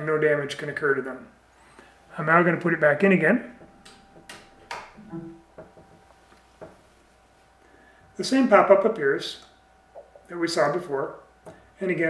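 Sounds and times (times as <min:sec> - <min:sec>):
device-connect chime: 0:04.9 - 0:05.6.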